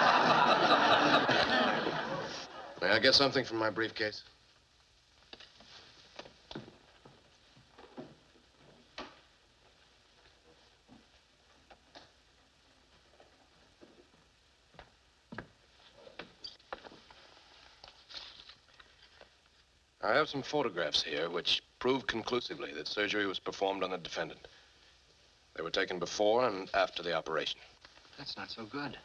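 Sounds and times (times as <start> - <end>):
soft rustles of handled photographs: 4.2 - 19.9, 26.5 - 29.0
footsteps: 5.3 - 19.2.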